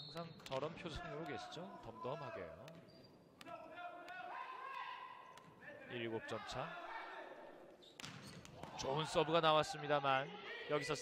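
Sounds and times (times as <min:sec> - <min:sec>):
volleyball bouncing on gym floor: 0:08.0 - 0:08.8.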